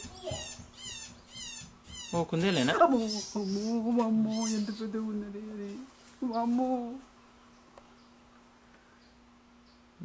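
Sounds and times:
small animal high-pitched calls: 0.0s - 4.9s
faint steady hum: 0.0s - 10.0s.

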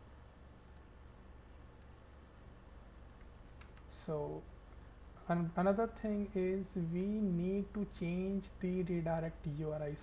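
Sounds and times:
low electrical hum: 0.0s - 10.0s
mouse and keyboard clicks: 3.0s - 3.9s.

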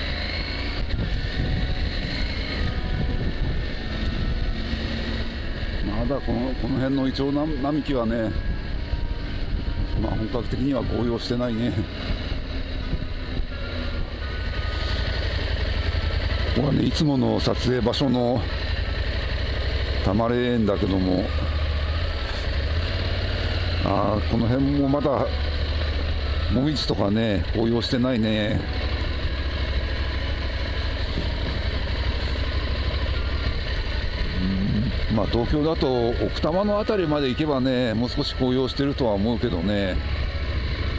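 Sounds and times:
motorcycle engine running: 0.0s - 40.9s
wind and road noise: 0.0s - 40.9s.

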